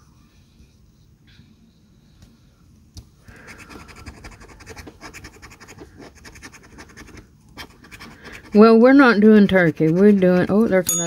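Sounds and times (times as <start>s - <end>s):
coin scratching lottery ticket: 3.4s - 10.8s.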